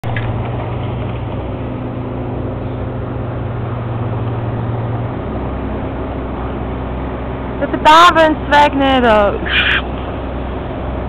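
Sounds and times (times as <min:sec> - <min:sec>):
heavy machinery humming: 0:00.0 - 0:11.0.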